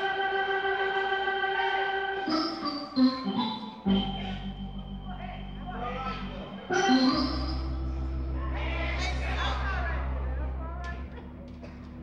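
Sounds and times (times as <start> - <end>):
organ playing held chords: 0.0 - 12.0
deep held bass notes: 3.2 - 12.0.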